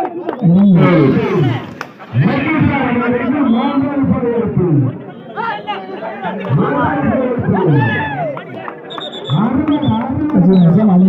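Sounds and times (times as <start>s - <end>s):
crowd chatter: 0.0s - 11.0s
men talking and calling out: 0.0s - 11.0s.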